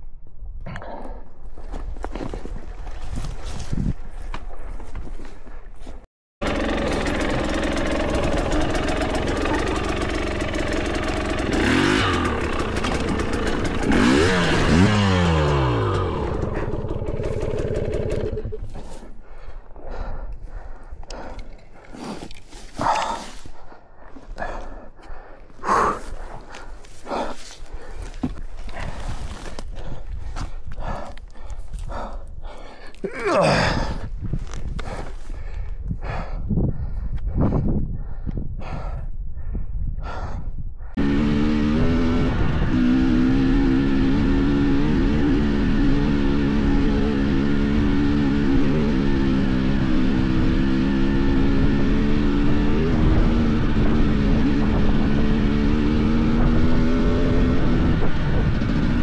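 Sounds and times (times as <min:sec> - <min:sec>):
motorcycle engine revving: 0:06.4 - 0:19.0, 0:41.0 - 0:59.0.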